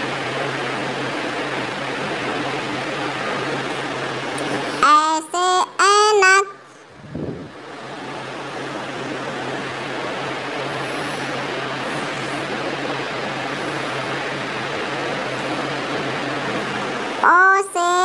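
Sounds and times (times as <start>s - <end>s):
steady rushing noise: 0.0s - 18.0s.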